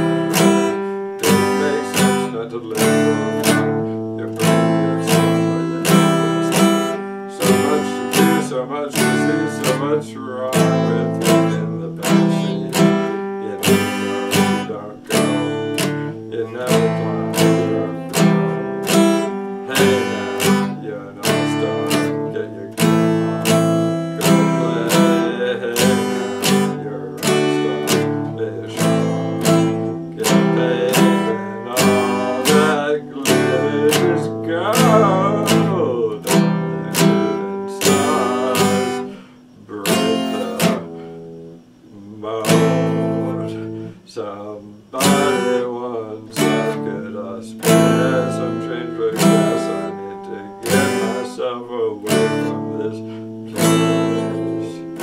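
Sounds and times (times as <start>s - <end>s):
acoustic guitar strumming chords: 0.0s - 55.0s.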